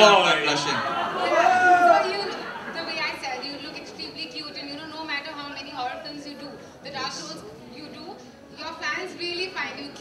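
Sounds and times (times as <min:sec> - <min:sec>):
general chatter: 0:00.0 - 0:10.0.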